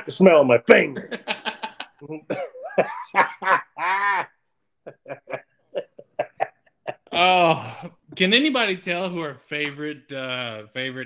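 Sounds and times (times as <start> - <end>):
man laughing hard: 1.0 - 7.8.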